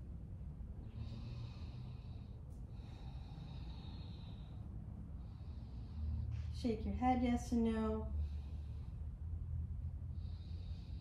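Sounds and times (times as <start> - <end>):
low room rumble: 0.0 - 11.0
person breathing slowly: 0.6 - 6.6, 8.1 - 11.0.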